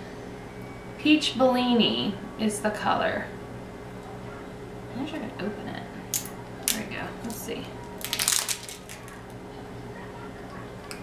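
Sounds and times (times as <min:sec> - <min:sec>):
packaging crinkling: 0:07.8 - 0:09.4.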